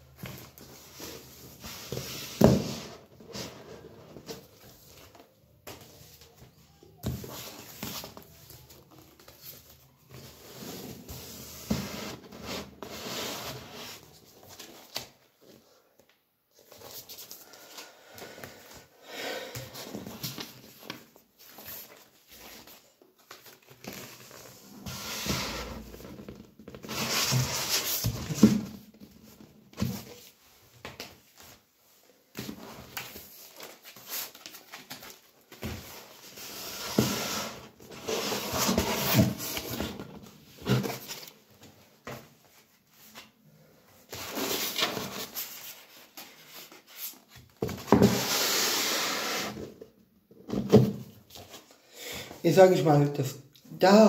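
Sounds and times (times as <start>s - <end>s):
cardboard sleeves rustling and sliding: 19.8s - 43.4s.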